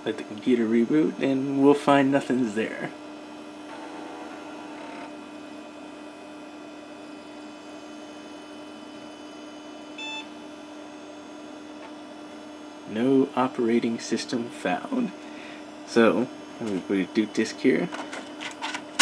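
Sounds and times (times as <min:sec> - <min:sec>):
computer fan hum: 0:00.0 - 0:19.0.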